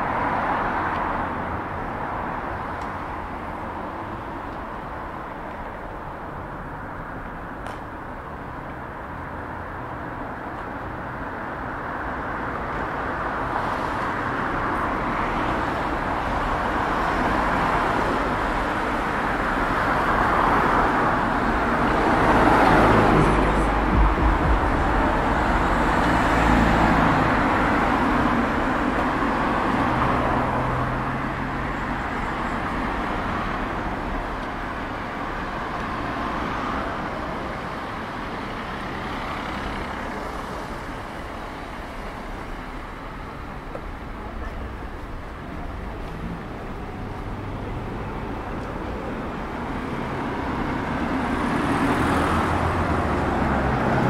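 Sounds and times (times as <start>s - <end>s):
cars passing: 0.0s - 54.0s.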